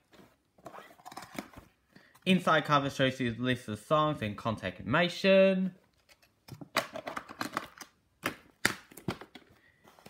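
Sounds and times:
plastic cassette case clattering: 6.1 - 9.5.

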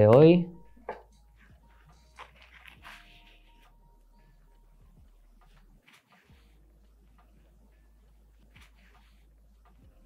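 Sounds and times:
paper towel wiping skin: 1.4 - 3.8, 5.4 - 9.8.

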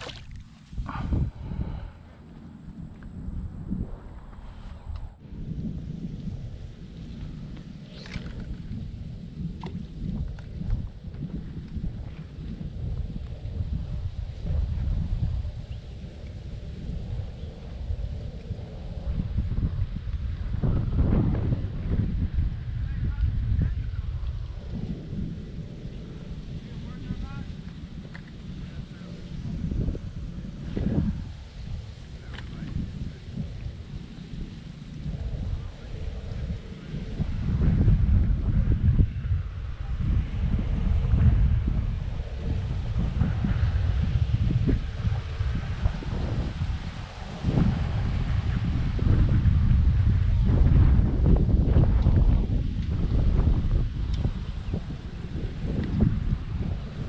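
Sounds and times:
gusty wind buffeting microphone: 0.0 - 57.0.

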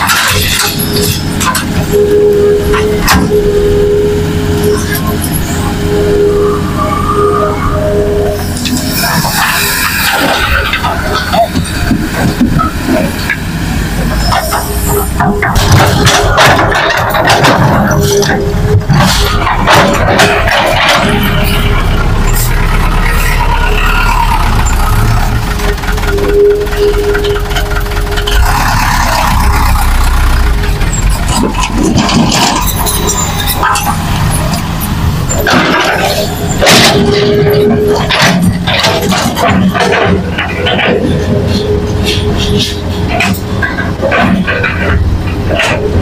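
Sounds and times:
soil and rock clattering: 0.0 - 2.0, 8.6 - 46.0
diesel engines rumbling: 0.0 - 46.0
engine whine: 0.0 - 46.0.

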